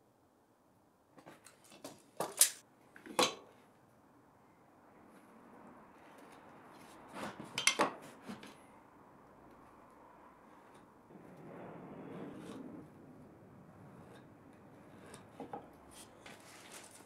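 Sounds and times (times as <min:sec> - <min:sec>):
pen marking on wood: 0:13.9 - 0:17.0.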